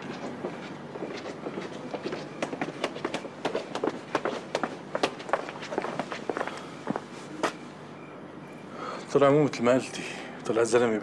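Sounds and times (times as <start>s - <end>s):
footsteps on stone steps: 0.0s - 7.6s.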